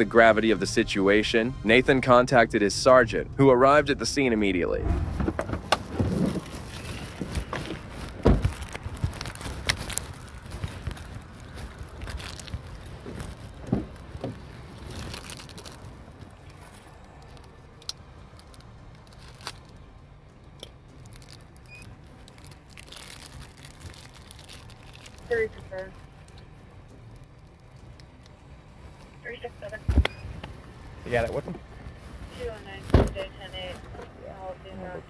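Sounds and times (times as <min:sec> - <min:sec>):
camera rustling against clothing: 0:04.8 - 0:17.4, 0:29.8 - 0:34.2.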